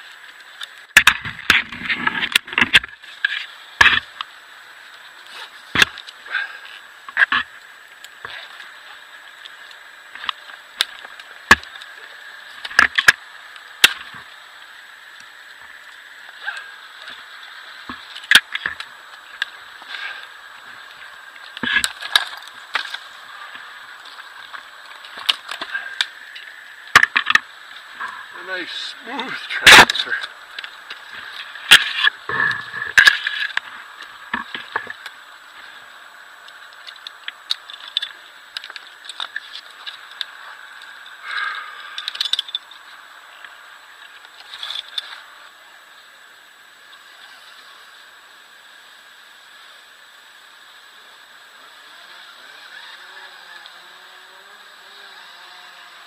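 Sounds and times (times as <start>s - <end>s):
branches snapping: 0.2s - 4.3s, 4.9s - 14.4s, 15.0s - 28.3s, 29.1s - 35.7s.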